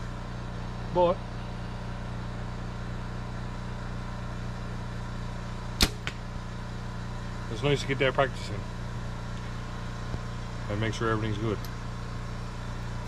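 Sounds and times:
steady low hum: 0:00.0 - 0:13.0
bow string snap: 0:05.8 - 0:06.2.

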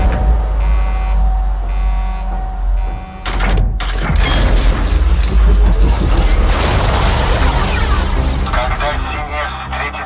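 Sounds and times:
mechanical clanking and creaking: 0:00.0 - 0:08.9
deep rumble: 0:00.0 - 0:09.4.

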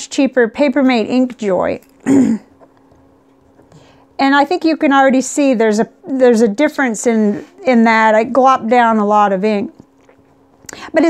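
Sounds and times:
person clearing throat: 0:02.0 - 0:02.6.

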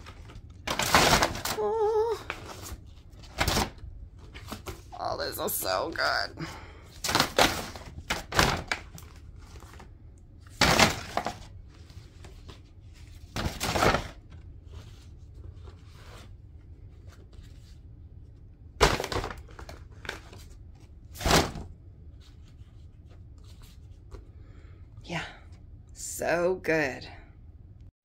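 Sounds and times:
photos dropping into paper bag: 0:00.0 - 0:04.9, 0:07.0 - 0:09.9, 0:10.5 - 0:11.6, 0:18.8 - 0:20.5
paper rustling and crinkling: 0:00.0 - 0:05.0, 0:06.9 - 0:24.3.

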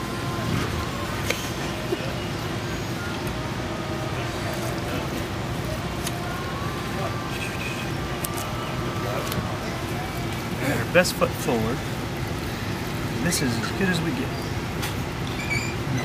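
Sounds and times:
indistinct background voices: 0:00.0 - 0:14.4.

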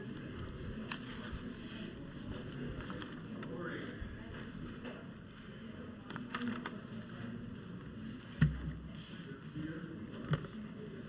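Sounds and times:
faint background chatter: 0:00.0 - 0:11.0.

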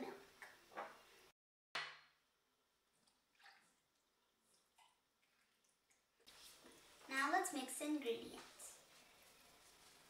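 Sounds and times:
liquid dripping and splashing: 0:02.9 - 0:07.0.

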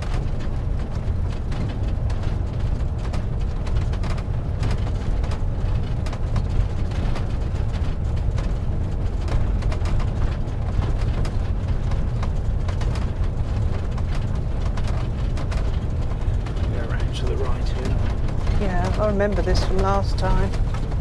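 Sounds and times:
engine and road rumble: 0:00.0 - 0:21.0
small clicks and rattles: 0:00.0 - 0:21.0.

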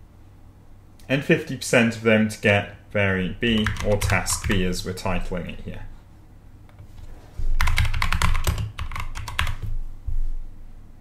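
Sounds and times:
typing on computer keyboard: 0:03.4 - 0:04.6, 0:07.6 - 0:09.7.

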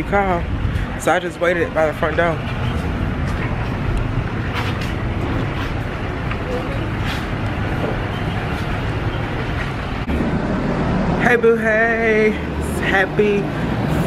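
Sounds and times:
road traffic rumble: 0:00.0 - 0:14.0.

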